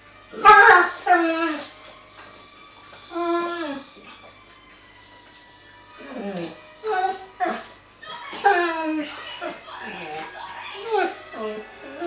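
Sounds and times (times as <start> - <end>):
dog whining: 0.3 - 4.2, 6.0 - 12.0.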